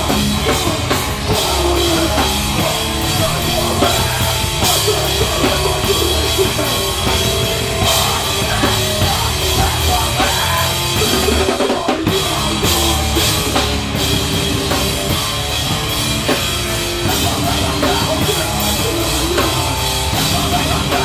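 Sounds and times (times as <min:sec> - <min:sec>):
distorted electric guitar: 0:00.0 - 0:21.0
hardcore band playing live: 0:00.0 - 0:21.0
pounding drum kit: 0:00.0 - 0:21.0.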